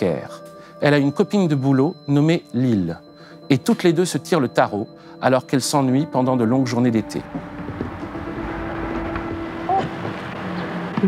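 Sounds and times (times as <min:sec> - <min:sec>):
soundtrack hum: 0:07.1 - 0:11.0.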